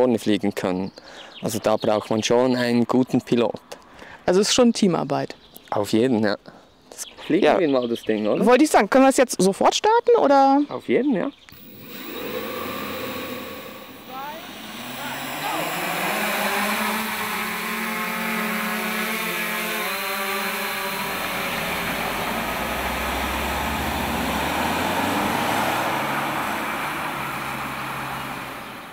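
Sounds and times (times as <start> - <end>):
drone motors whining: 11.5 - 28.9.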